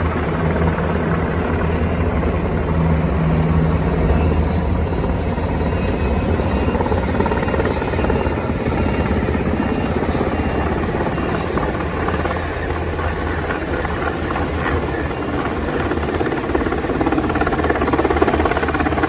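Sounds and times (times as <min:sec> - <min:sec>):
helicopter rotors chopping: 0:00.0 - 0:19.0.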